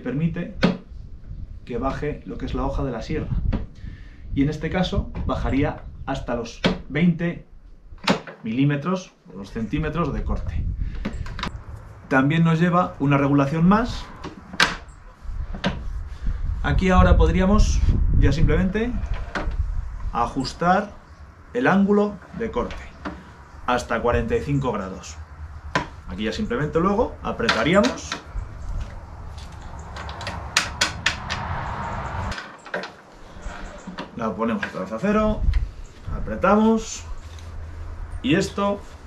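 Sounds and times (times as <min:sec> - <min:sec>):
low rumble: 0:10.3 - 0:14.2, 0:22.5 - 0:34.4.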